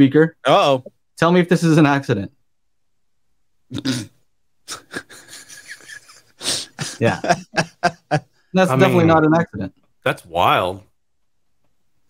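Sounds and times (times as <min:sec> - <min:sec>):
men laughing: 0:04.7 - 0:09.2.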